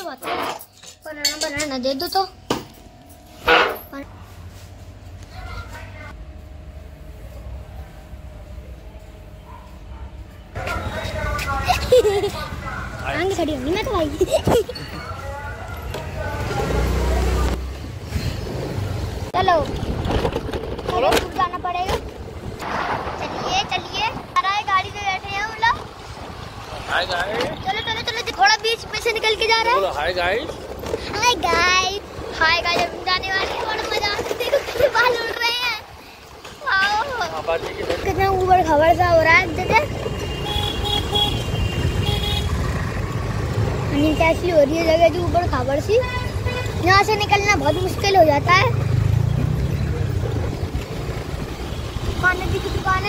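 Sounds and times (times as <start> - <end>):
vehicle horn toots: 3.4 - 3.9, 40.0 - 42.6, 46.0 - 46.8
wind and road noise: 10.9 - 53.0.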